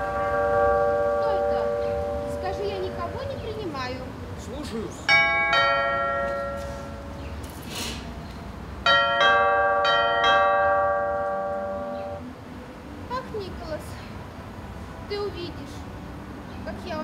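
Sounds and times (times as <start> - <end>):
bell chimes: 0.0 - 3.6, 5.1 - 7.2, 8.9 - 12.2.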